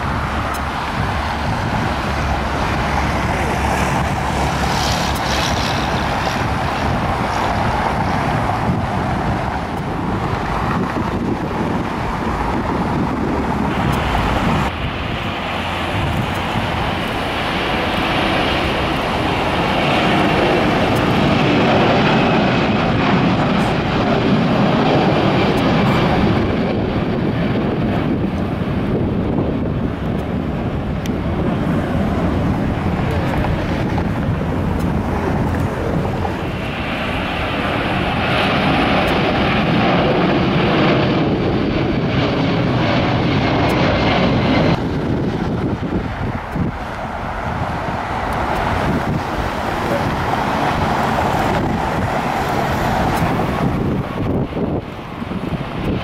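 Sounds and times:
jet engine taking off: 0.0s - 56.0s.

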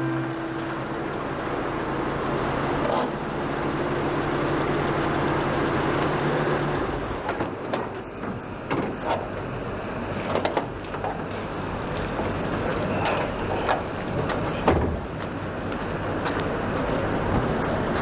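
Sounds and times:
car engine and tyres: 0.0s - 18.0s.

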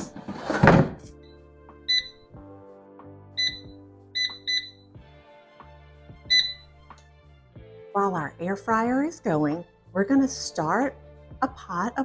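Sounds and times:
soft background music: 0.0s - 12.0s
short high beeps: 1.9s - 2.2s, 3.4s - 4.8s, 6.3s - 6.6s.

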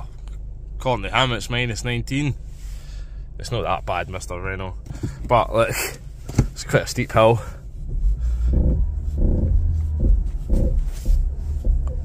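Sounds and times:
car engine rumbling under load: 0.0s - 12.0s.

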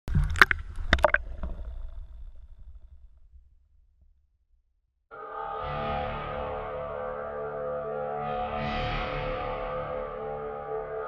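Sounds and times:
low watery rumble: 0.0s - 3.6s
water splashing against camera: 0.1s - 2.2s.

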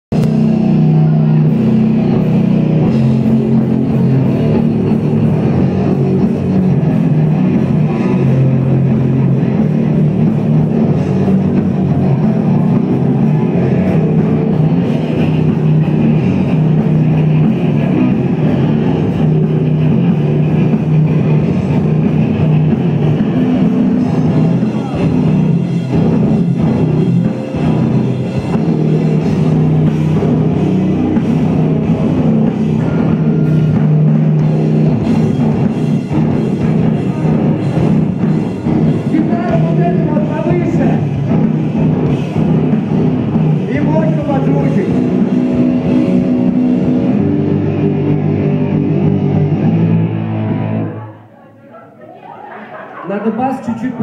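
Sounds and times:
pounding drum kit: 0.1s - 50.9s
distorted electric guitars: 0.1s - 51.2s.

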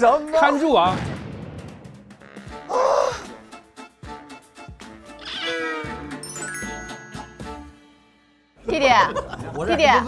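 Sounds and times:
light background music: 1.7s - 10.0s
cartoon cat meow: 5.2s - 6.0s
bright chime-like notes: 6.2s - 7.9s.

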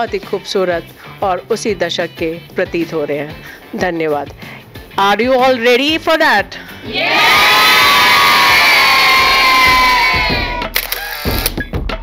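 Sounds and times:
women cheering: 6.9s - 10.7s.

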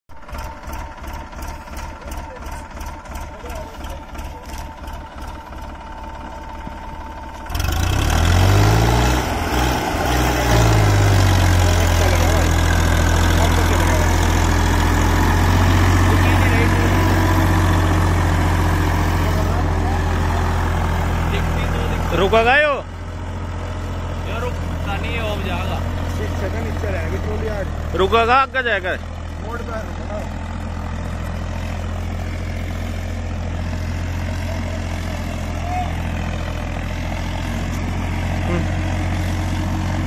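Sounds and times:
tractor diesel engine chugging: 0.1s - 40.0s.

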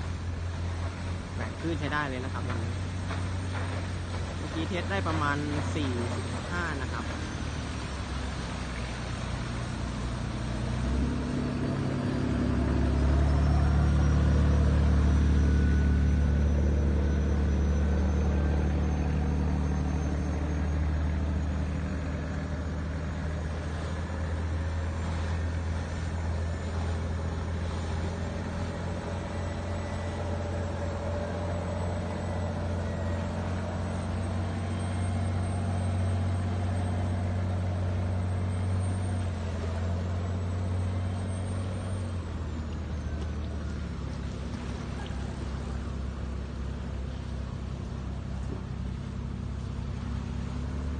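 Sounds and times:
boat diesel engine droning: 0.0s - 50.9s.

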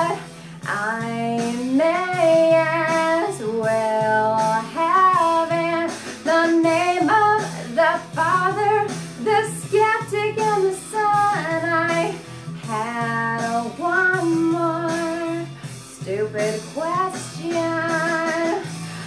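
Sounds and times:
instrumental backing track: 0.0s - 19.0s
woman singing: 0.0s - 19.0s.

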